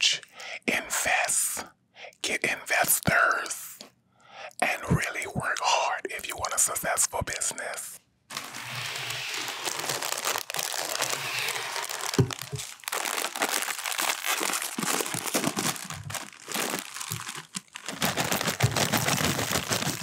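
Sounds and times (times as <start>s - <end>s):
plastic snack bag crinkling: 7.6s - 20.0s
snacks pouring into glass bowl: 8.3s - 20.0s.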